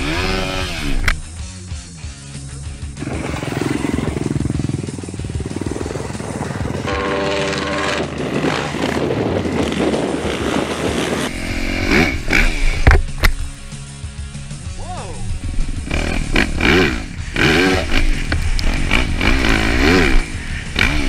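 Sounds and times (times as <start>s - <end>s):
dirt bike engine revving: 0.0s - 1.3s, 2.8s - 13.3s, 15.3s - 21.0s.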